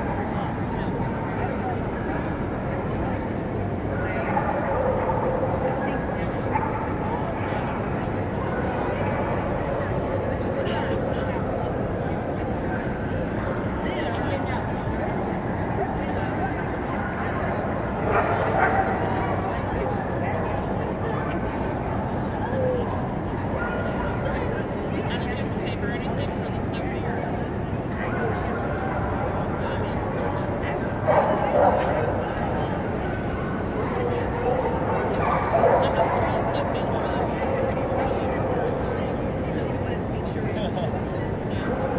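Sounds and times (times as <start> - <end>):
chatter of people: 0.0 - 41.9.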